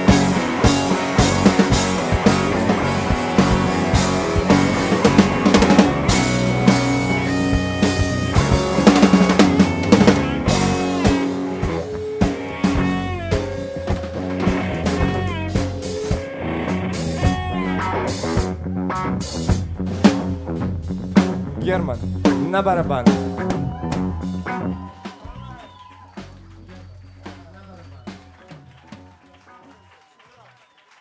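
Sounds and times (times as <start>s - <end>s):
harmonica notes: 0.0s - 18.2s
live band playing: 0.0s - 29.8s.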